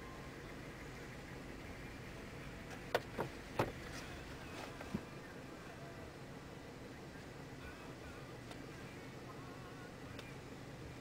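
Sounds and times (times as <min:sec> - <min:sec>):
faint wavering high tones: 0:00.0 - 0:02.3
car engine idling: 0:00.0 - 0:11.0.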